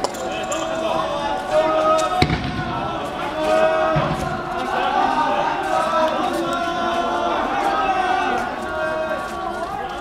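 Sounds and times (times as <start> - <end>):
crowd shouting: 0.0 - 10.0
low thud: 2.2 - 3.1
sharp bang: 2.2 - 3.1.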